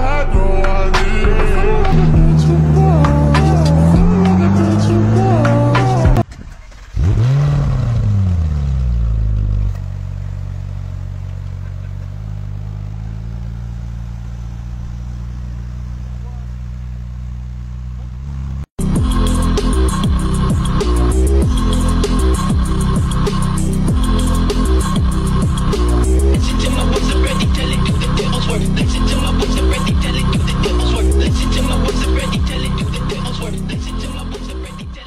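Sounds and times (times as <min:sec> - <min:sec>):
electronic music with steady beat: 0:00.0 - 0:06.2, 0:18.8 - 0:35.0
car engine revving: 0:00.0 - 0:34.8.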